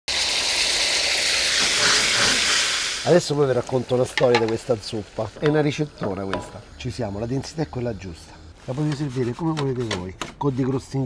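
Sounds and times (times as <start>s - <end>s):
sauce sizzling in hot oil: 0.1s - 8.7s.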